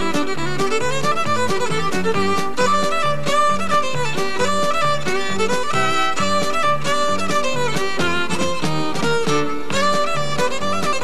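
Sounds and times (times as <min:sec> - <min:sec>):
band backing with bass: 0:00.0 - 0:11.0
fiddle playing quick tune: 0:00.0 - 0:11.0.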